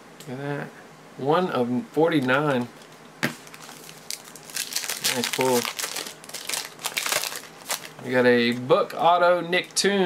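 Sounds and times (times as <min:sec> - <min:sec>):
foil wrapper crinkling: 0:02.2 - 0:08.2.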